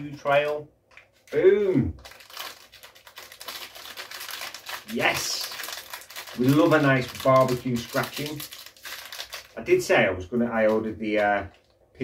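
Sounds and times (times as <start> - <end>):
snack packet crinkling: 2.0 - 9.9.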